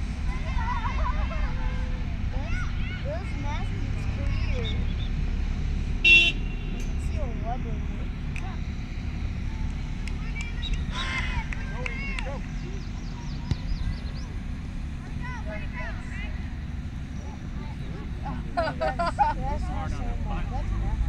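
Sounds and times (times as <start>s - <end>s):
distant shouts and calls: 0.0s - 21.0s
steady low rumble: 0.0s - 21.0s.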